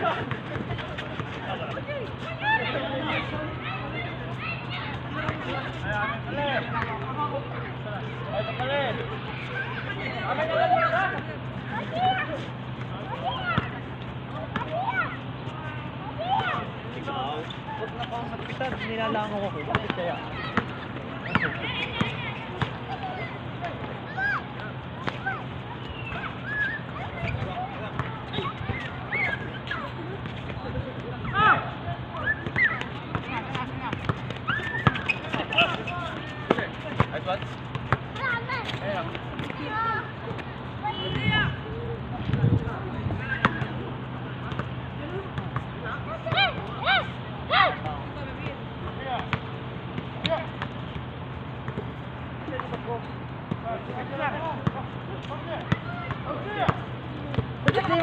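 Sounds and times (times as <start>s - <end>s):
distant players shouting: 7.7s - 30.4s, 31.0s - 44.8s, 45.8s - 48.0s
basketball bouncing on court: 18.7s - 23.2s, 32.4s - 39.6s, 43.3s - 43.8s, 44.4s - 44.8s, 51.7s - 51.9s, 55.7s - 58.0s.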